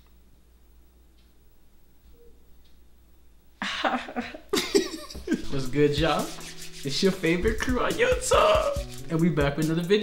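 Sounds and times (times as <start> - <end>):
men laughing: 3.6 - 5.7.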